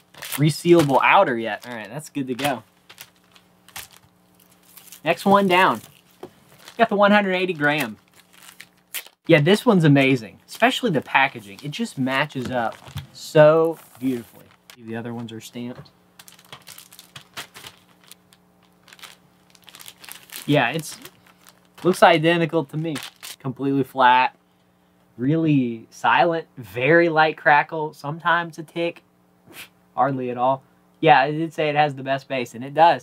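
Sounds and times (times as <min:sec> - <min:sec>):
record sleeves crinkling: 0:00.0 - 0:23.5
faint steady hum: 0:00.0 - 0:33.0.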